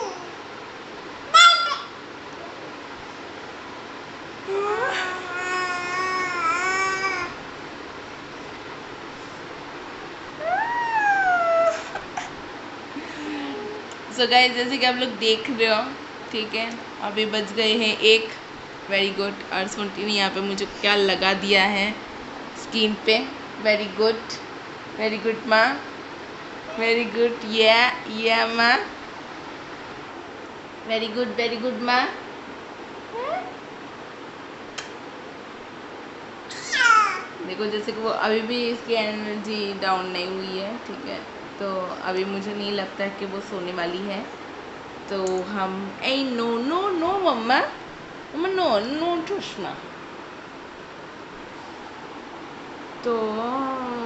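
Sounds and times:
baby crying: 0.0s - 0.4s, 4.5s - 7.4s, 10.4s - 12.2s, 36.5s - 37.4s
toddler squealing: 1.3s - 2.0s, 4.5s - 7.4s, 10.4s - 12.2s, 36.5s - 37.3s.

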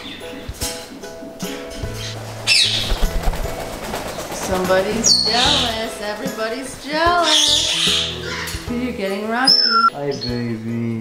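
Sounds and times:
background music: 0.0s - 11.0s
shrill parrot call: 7.2s - 8.5s.

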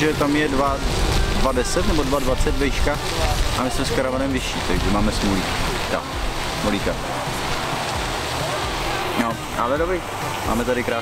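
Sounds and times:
outdoor rushing noise with rumble: 0.0s - 11.0s.

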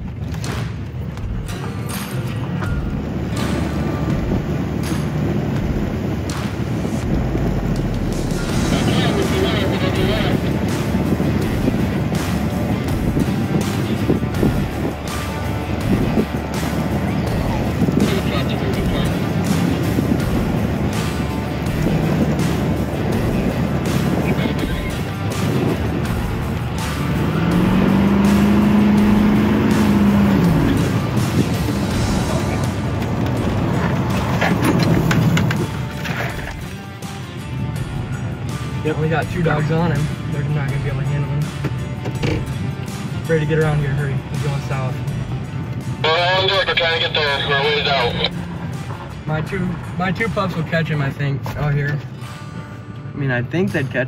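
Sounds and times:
background music: 0.0s - 54.0s
road noise: 0.0s - 54.0s
truck engine: 0.0s - 54.0s.

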